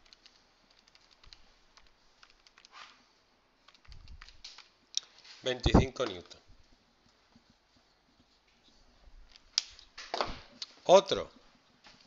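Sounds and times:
calculator keys clicking: 0.0s - 2.7s.

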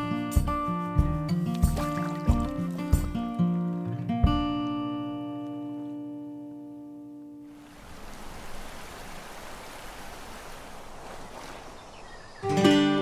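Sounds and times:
shallow river water rushing: 1.5s - 3.8s, 7.5s - 12.5s.

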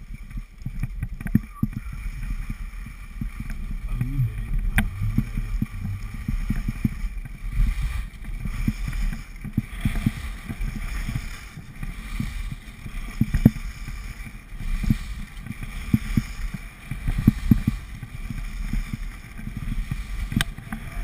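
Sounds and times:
skis running over snow: 0.0s - 21.0s
wind buffeting microphone: 0.0s - 21.0s
low thumps: 3.2s - 8.1s.

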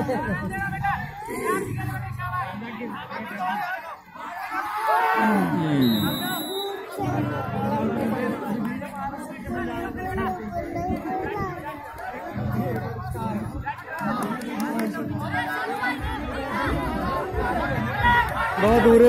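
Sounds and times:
crowd chattering: 0.0s - 19.0s.

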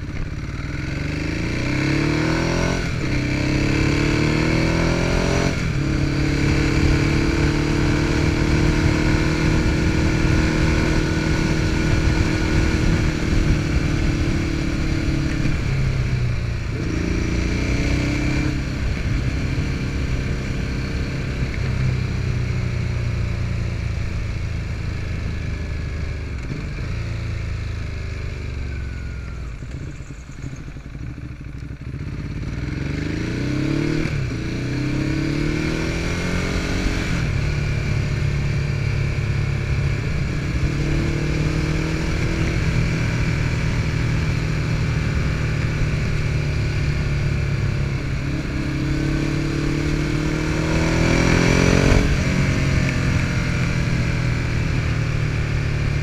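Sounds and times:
motorcycle engine running: 0.0s - 56.0s
wind noise on microphone: 8.0s - 15.9s.

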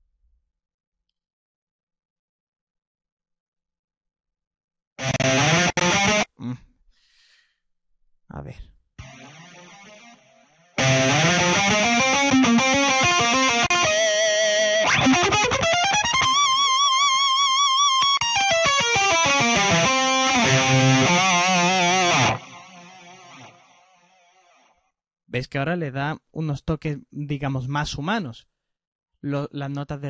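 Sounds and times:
electric guitar solo with delay: 5.0s - 6.2s, 9.0s - 23.8s.

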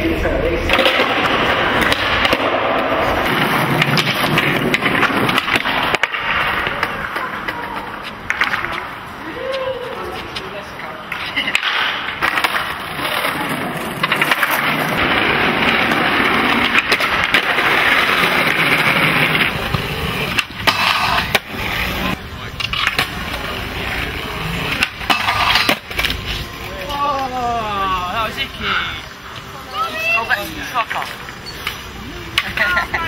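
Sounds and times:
skateboard wheels rolling on paving: 0.0s - 33.0s
skateboard clacking on ground: 0.4s - 27.3s, 28.3s - 33.0s.

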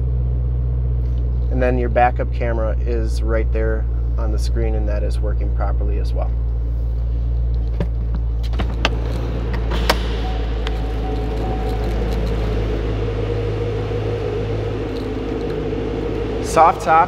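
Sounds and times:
car engine idling: 0.0s - 17.0s.

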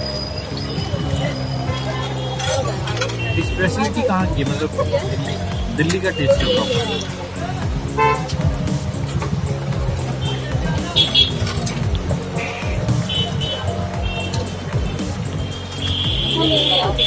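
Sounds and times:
vehicle horns tooting: 0.0s - 7.2s, 7.9s - 8.3s, 10.1s - 11.7s, 12.4s - 17.0s
rumble of passing vehicles: 0.0s - 17.0s.

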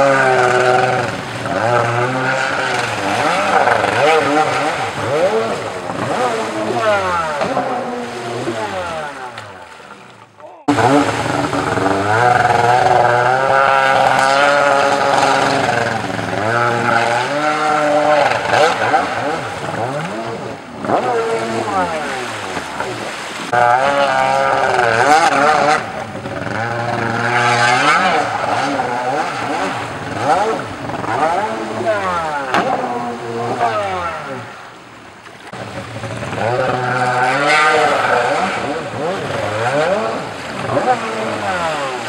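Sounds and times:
jet ski engine revving: 0.0s - 42.0s.

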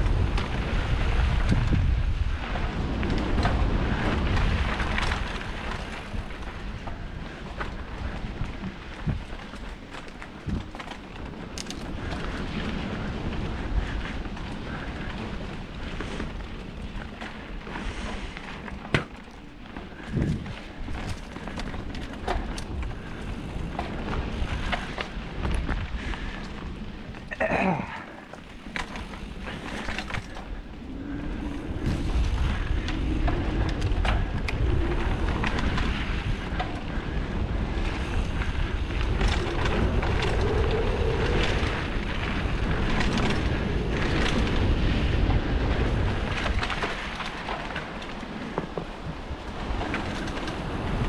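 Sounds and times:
bike rattling and knocking: 0.0s - 51.0s
tyres rolling over dirt: 0.0s - 51.0s
wind buffeting microphone: 0.0s - 51.0s.

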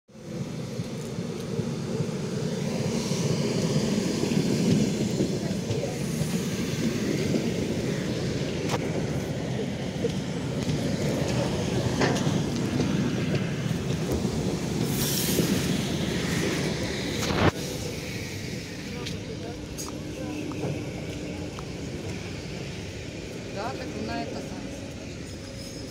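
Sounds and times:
train cars rumbling past: 0.1s - 25.9s
brief hiss: 14.9s - 16.3s.

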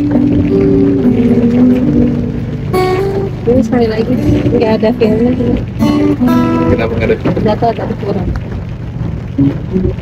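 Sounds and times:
acoustic guitar: 0.0s - 10.0s.

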